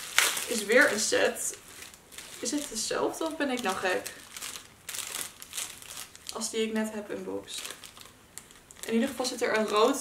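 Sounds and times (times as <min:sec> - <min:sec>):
bubble-wrap pouch crinkling: 0:00.0 - 0:10.0.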